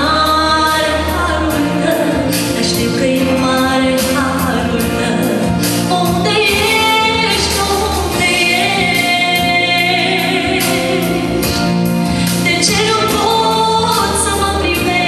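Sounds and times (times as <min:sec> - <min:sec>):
woman singing into microphone: 0:00.0 - 0:15.0.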